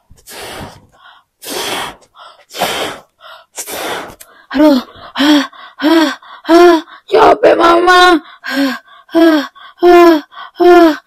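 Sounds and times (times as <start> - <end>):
person blowing up balloon: 0.0 - 6.8
quick inhales: 0.2 - 5.8.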